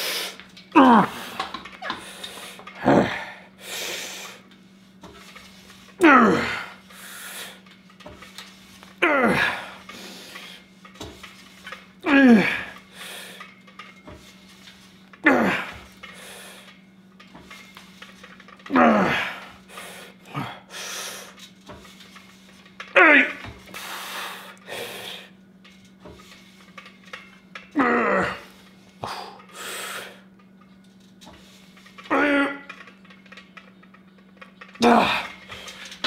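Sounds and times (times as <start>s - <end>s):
man breathing heavily: 0.0s - 4.4s, 6.0s - 7.6s, 19.0s - 21.4s, 23.7s - 25.4s, 28.3s - 30.3s
man grunting with effort: 0.8s - 2.0s, 2.8s - 3.5s, 6.0s - 6.8s, 9.0s - 9.8s, 12.0s - 12.8s, 15.2s - 15.8s, 18.7s - 19.5s, 20.3s - 20.7s, 23.0s - 23.5s, 27.8s - 29.4s, 32.1s - 32.7s, 34.8s - 35.4s.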